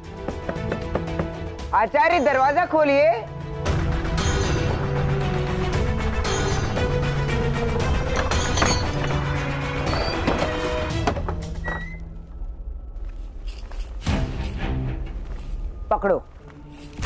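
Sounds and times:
dramatic background score: 0.0s - 17.0s
door chain thunk: 8.0s - 9.3s.

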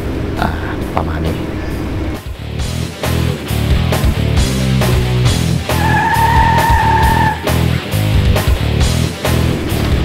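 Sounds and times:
rock band playing: 2.2s - 10.0s.

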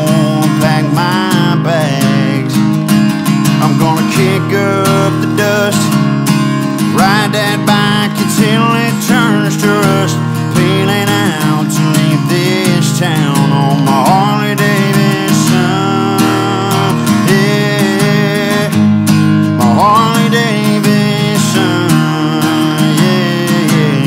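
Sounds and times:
acoustic guitar strummed: 0.0s - 24.0s
sliding lead guitar line: 0.0s - 24.0s.

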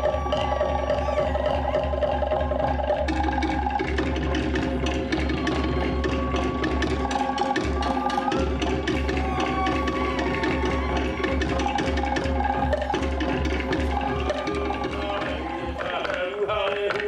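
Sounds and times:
wooden log drums beating: 0.0s - 17.0s.

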